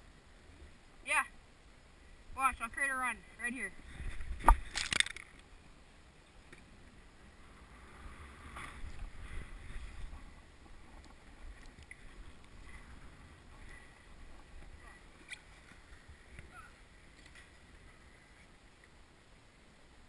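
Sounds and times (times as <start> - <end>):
wind rumble on microphone: 6.5 - 18.5.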